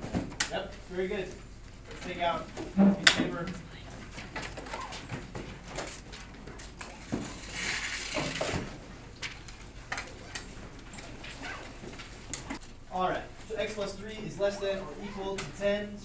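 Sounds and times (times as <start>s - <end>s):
paper rustle: 3.9s - 12.7s.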